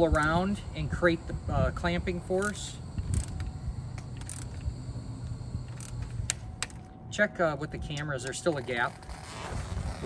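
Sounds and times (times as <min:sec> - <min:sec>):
low steady hum: 0:00.0 - 0:10.0
hand ratchet clicking: 0:02.3 - 0:04.7, 0:05.6 - 0:06.8.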